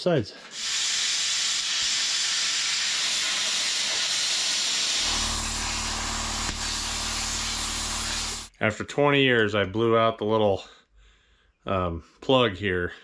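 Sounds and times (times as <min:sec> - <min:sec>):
angle grinder cutting metal: 0:04.9 - 0:08.5.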